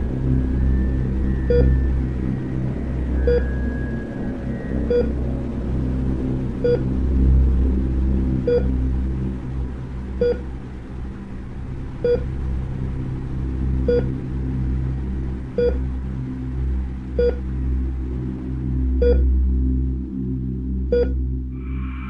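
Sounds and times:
low drone: 0.0s - 22.0s
heart monitor beeps: 1.5s - 1.8s, 3.2s - 3.6s, 4.9s - 5.1s, 8.5s - 8.7s, 10.2s - 10.4s, 12.0s - 12.2s, 17.2s - 17.4s, 19.0s - 19.2s, 20.9s - 21.2s.

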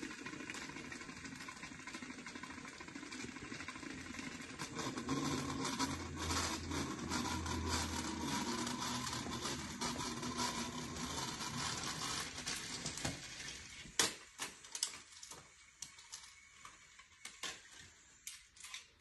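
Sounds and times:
toy train motor whirring: 0.0s - 19.0s.

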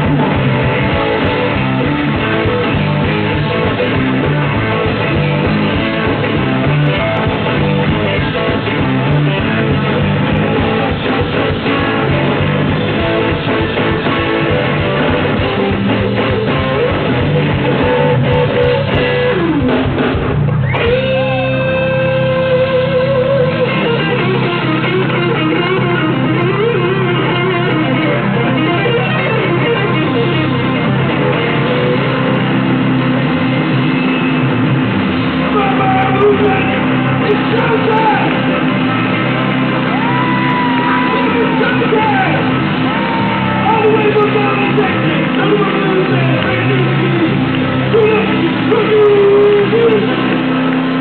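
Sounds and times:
bass guitar: 0.0s - 51.0s
blues band playing: 0.0s - 51.0s
electric guitar lead line: 0.0s - 51.0s.

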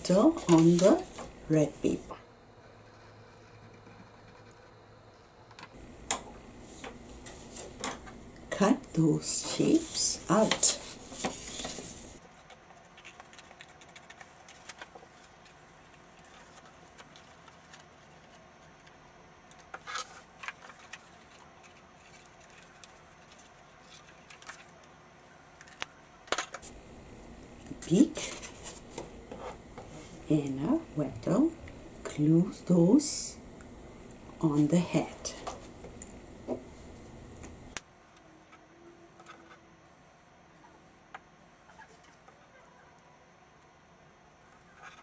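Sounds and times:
paper rustling: 0.1s - 2.1s, 9.4s - 18.9s, 19.5s - 24.9s, 27.9s - 30.3s.

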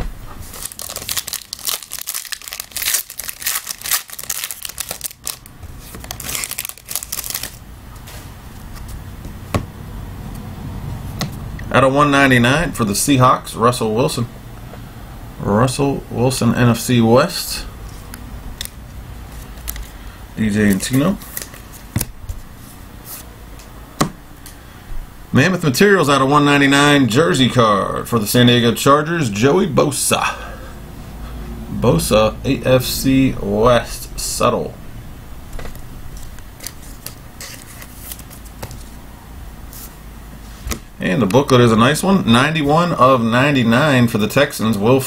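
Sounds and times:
foil wrapper tearing and crinkling: 0.4s - 7.6s.

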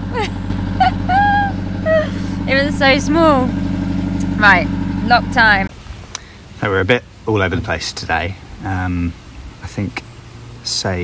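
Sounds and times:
woman laughing: 0.0s - 2.7s
boat engine running: 0.0s - 5.7s.

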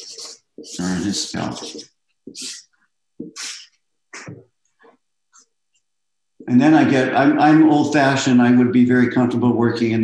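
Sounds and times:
marker drawing on paper: 0.0s - 5.5s.

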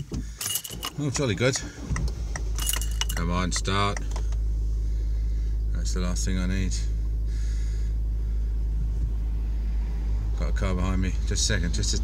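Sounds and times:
car engine rumble inside cabin: 0.0s - 12.0s
road noise: 0.0s - 12.0s.

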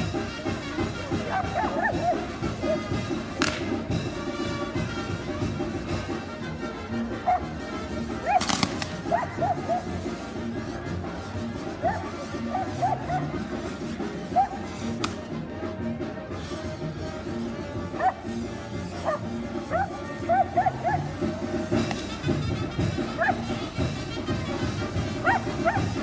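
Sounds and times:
steady music: 0.0s - 26.0s
dog yipping: 1.2s - 2.8s, 7.2s - 7.5s, 8.2s - 10.0s, 11.8s - 13.4s, 14.3s - 14.6s, 17.9s - 18.3s, 19.0s - 21.1s, 23.1s - 23.6s, 25.2s - 26.0s.

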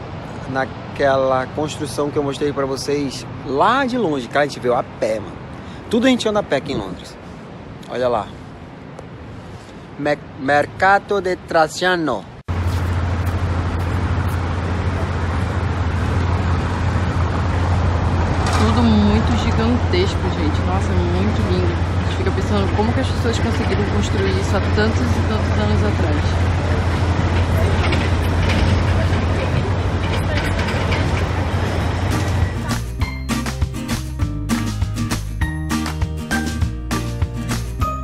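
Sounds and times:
traffic hiss: 0.0s - 18.2s
road traffic rumble: 0.0s - 38.0s
faint voices: 18.5s - 32.9s.

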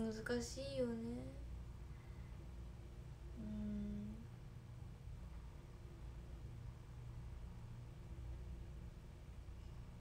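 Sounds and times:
low room noise: 0.0s - 10.0s
woman humming: 3.4s - 4.3s.

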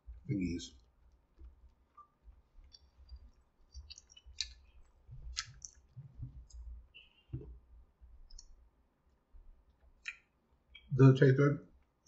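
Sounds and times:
mouth clicks from chewing: 2.0s - 5.8s.

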